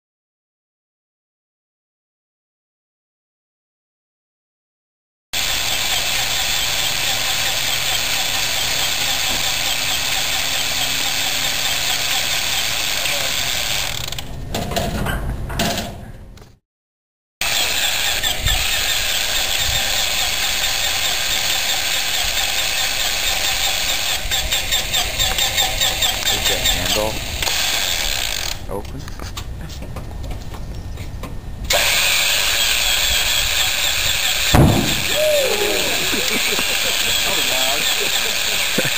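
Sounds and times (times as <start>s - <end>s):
radial engine cranking on starter: 17.4s - 28.6s, 31.7s - 38.9s.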